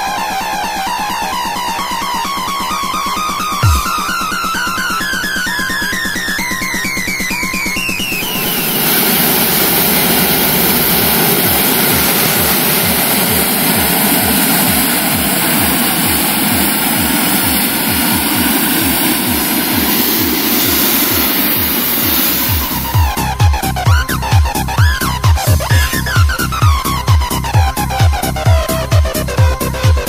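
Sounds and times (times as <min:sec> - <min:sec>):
low pulsing: 0:03.6 - 0:05.0, 0:07.9 - 0:29.7
propane burner roaring: 0:07.9 - 0:26.5.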